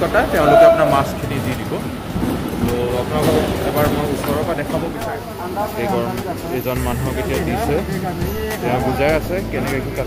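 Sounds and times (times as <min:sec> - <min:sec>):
rumbling din of a busy hall: 0:00.0 - 0:10.0
voices: 0:00.0 - 0:10.0.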